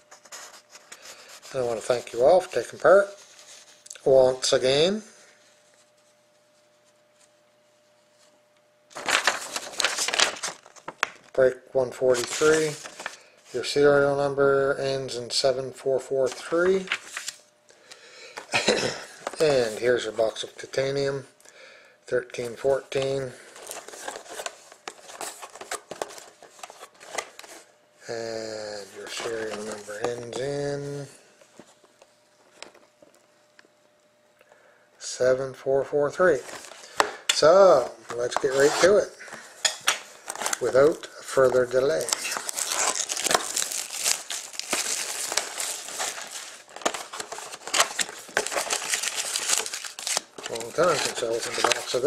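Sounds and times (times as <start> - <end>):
plastic shrink-wrap crinkling: 8.9 - 11.4, 39.9 - 52.0.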